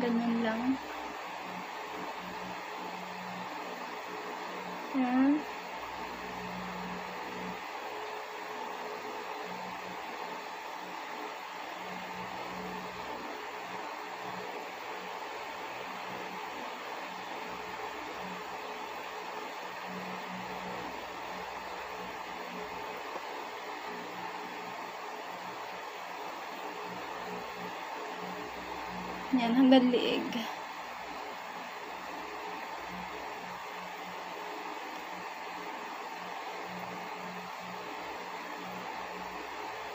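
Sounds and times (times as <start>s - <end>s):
electric fan humming: 0.0s - 39.9s.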